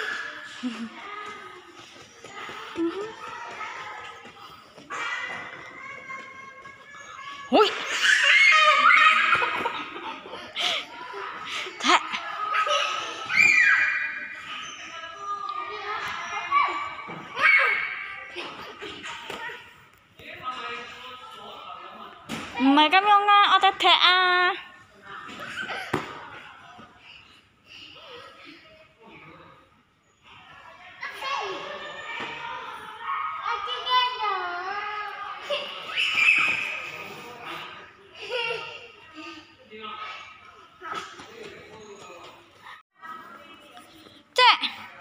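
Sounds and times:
children laughing and squealing: 0:00.0 - 0:19.8, 0:25.3 - 0:26.6, 0:30.4 - 0:42.8.

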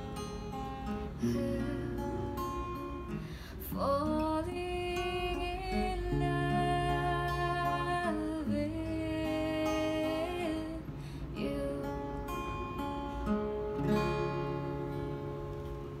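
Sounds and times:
acoustic guitar strumming: 0:00.0 - 0:16.0.

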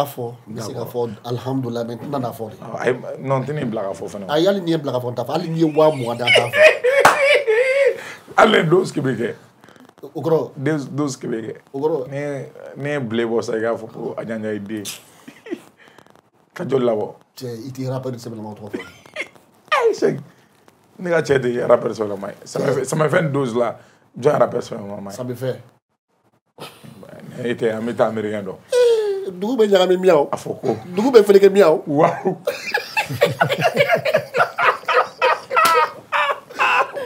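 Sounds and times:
hearty gasping laughter: 0:05.8 - 0:08.2, 0:33.0 - 0:37.0.

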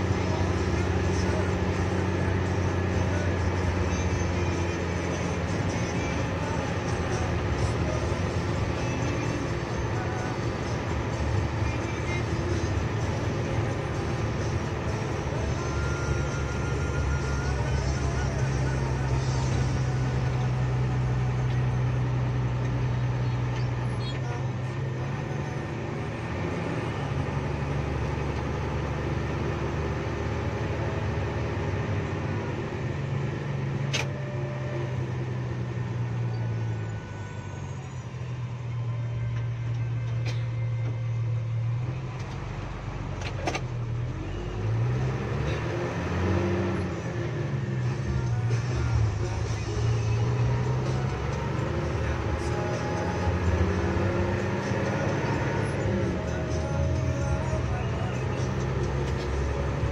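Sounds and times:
bus engine while driving: 0:00.0 - 0:59.9.

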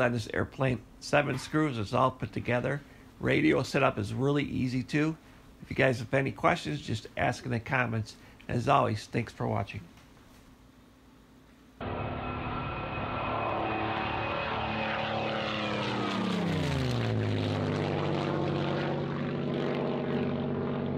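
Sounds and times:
aircraft engine running: 0:11.8 - 0:20.9.

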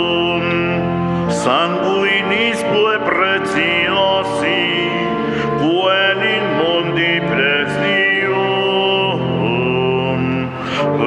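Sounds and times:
sustained accompaniment: 0:00.0 - 0:11.0.

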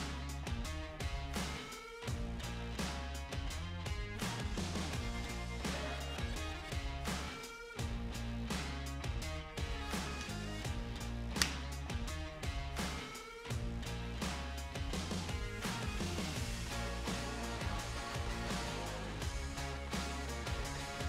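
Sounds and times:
background music with steady beat: 0:00.0 - 0:21.0.

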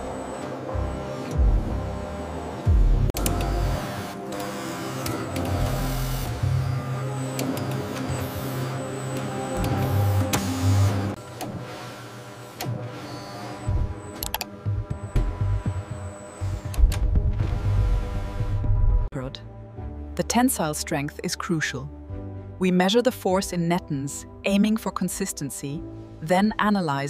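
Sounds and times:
music with pulsing bass: 0:00.7 - 0:04.0, 0:13.7 - 0:19.2.

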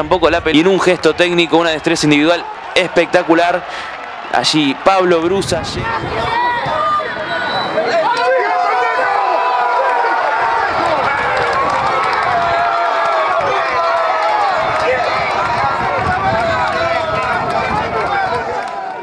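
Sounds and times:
crowd shouting and cheering: 0:00.0 - 0:19.0.

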